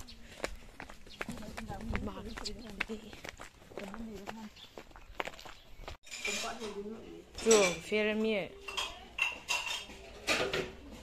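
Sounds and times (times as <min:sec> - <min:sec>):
metal kitchenware clinking: 0:06.0 - 0:11.0.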